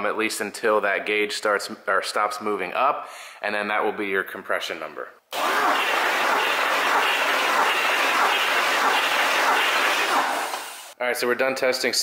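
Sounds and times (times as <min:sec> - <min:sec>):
starter motor cranking engine: 0:05.3 - 0:11.0.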